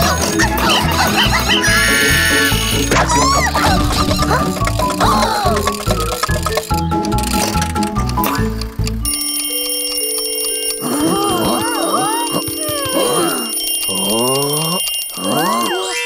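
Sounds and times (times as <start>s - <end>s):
squeaky cartoon voices chattering: 0.0s - 8.5s, 10.8s - 16.0s
held music notes: 0.0s - 15.1s
bell ringing fast: 0.6s - 16.0s.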